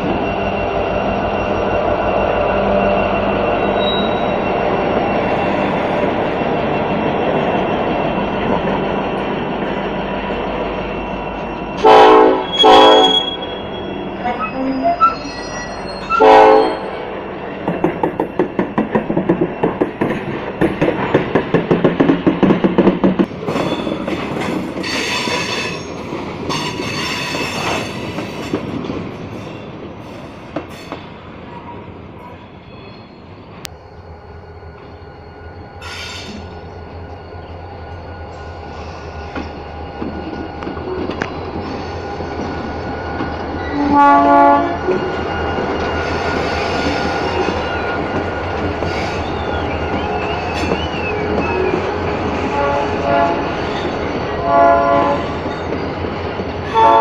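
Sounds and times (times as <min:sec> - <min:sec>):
train wheels squealing: 0:00.0 - 0:22.1, 0:23.4 - 0:33.7, 0:34.4 - 0:52.5, 0:53.4 - 0:54.5, 0:55.2 - 0:56.8
train horn blasts: 0:11.8 - 0:13.7, 0:16.1 - 0:17.1, 0:43.7 - 0:45.0, 0:52.4 - 0:53.6, 0:54.4 - 0:55.4, 0:56.7 - 0:57.0
train wheels clicking on rail joints: 0:17.3 - 0:32.4, 0:38.2 - 0:43.7, 0:44.7 - 0:52.6.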